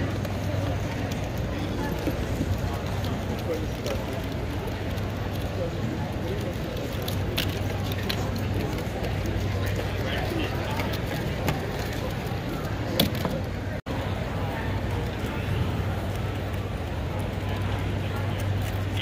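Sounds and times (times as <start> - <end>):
indistinct chatter of people: 0.0 - 19.0.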